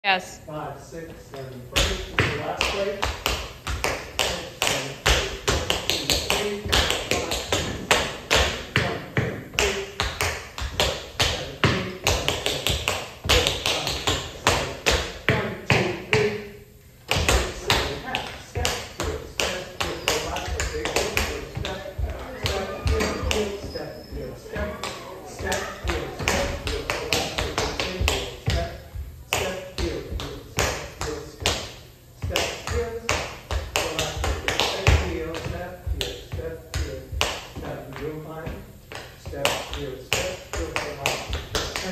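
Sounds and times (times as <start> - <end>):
tap shoes on wooden floor: 17.1 - 31.6.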